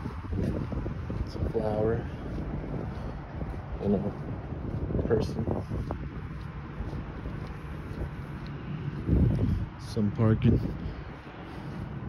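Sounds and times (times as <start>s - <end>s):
traffic rumble: 0.0s - 12.0s
wind: 0.0s - 12.0s.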